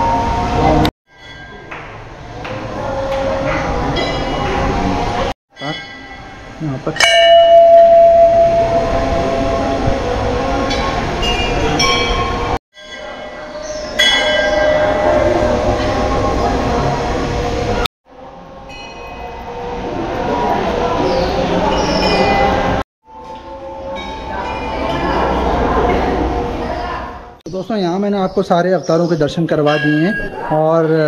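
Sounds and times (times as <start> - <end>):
metal bells ringing: 0.0 - 4.9, 5.5 - 17.1, 18.6 - 20.3, 23.6 - 25.8, 29.6 - 31.0
steady background noise: 0.0 - 31.0.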